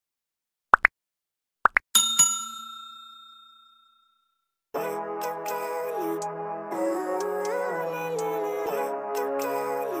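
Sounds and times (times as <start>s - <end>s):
notification bell ding: 2.0s - 4.1s.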